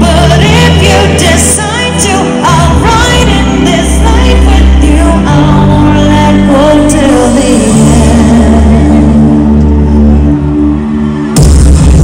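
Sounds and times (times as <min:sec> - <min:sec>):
sustained synth and bass chord: 0:00.0 - 0:12.0.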